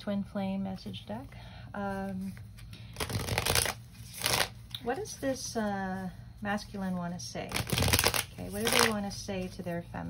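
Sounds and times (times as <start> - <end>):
cards being shuffled: 2.1 - 5.3, 7.4 - 9.6.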